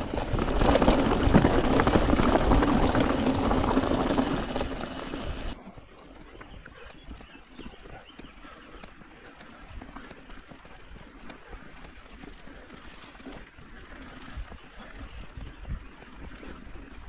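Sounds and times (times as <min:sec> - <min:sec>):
bike rattling: 0:00.0 - 0:05.6
bike tyres crunching on rocks: 0:00.0 - 0:05.6
bike rolling on smooth dirt: 0:00.0 - 0:17.0.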